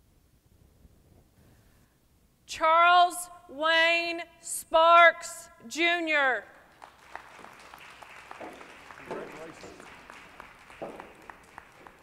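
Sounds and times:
scattered clapping: 6.7 - 12.0.

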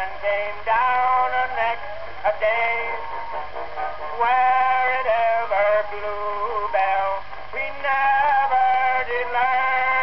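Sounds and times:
old phonograph recording of comic song: 0.0 - 10.0.

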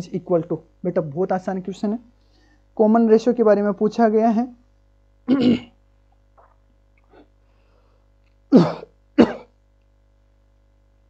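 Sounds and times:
man coughing: 5.3 - 5.8, 8.5 - 9.6.

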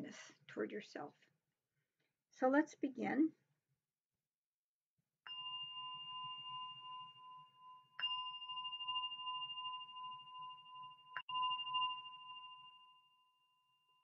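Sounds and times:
meditation bell ringing: 5.3 - 14.0.

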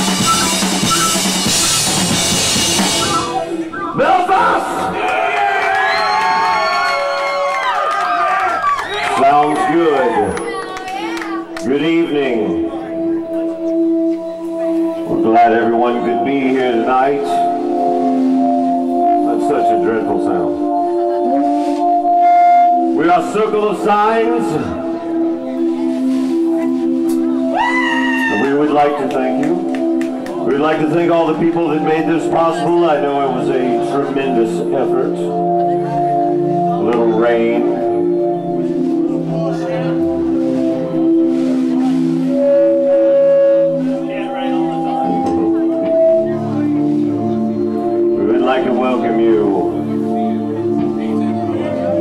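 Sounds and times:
electronic keyboard organ chord: 8.9 - 27.5, 28.3 - 52.0.

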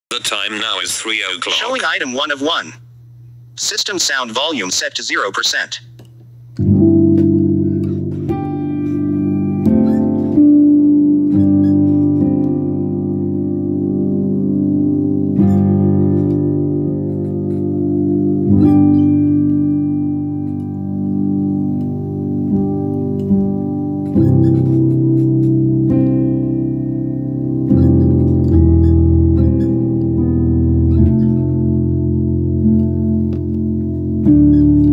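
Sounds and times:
keyboard playing slow chords: 6.0 - 34.9.

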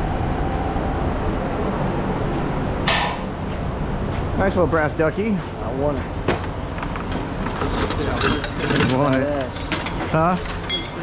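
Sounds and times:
scrap metal rattling and clinking: 6.9 - 11.0.

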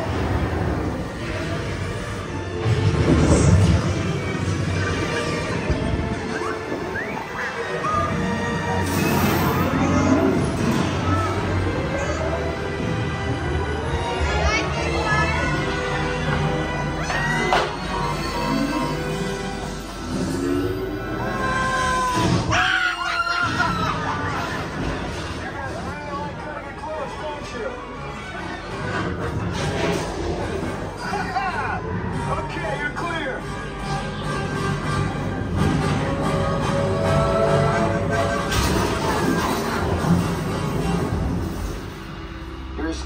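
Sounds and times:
music: 0.0 - 43.0
riders screaming: 21.0 - 24.3.

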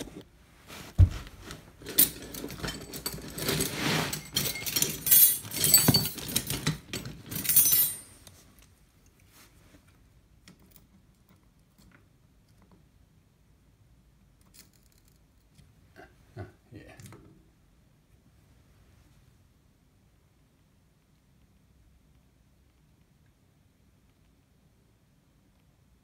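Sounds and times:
metal tools clattering: 1.8 - 8.3.

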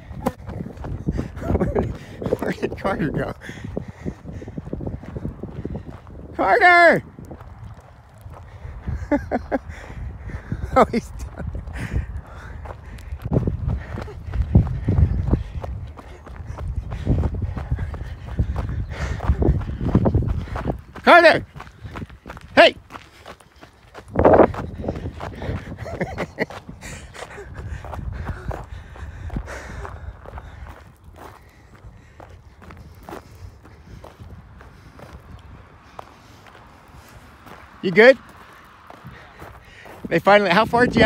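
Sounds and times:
footsteps on gravel: 0.0 - 41.0
low thumps and rumble: 7.0 - 22.5.

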